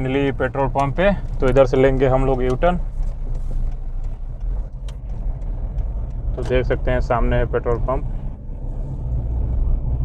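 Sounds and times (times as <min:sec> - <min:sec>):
car engine rumble: 0:00.0 - 0:10.0
tyres on wet road: 0:00.0 - 0:10.0.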